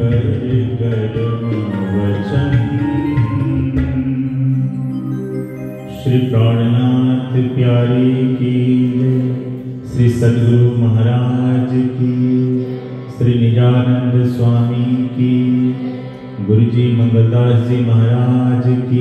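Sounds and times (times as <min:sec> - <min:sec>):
man chanting: 0:00.0 - 0:04.8, 0:05.9 - 0:19.0
harmonium: 0:00.0 - 0:19.0.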